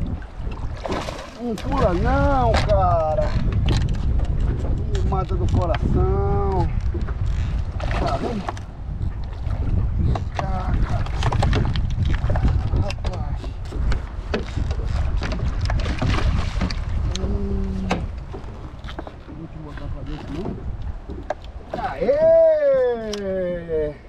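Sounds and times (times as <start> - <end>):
wind buffeting microphone: 0.0 - 24.0
fish splashing in water: 0.6 - 2.0.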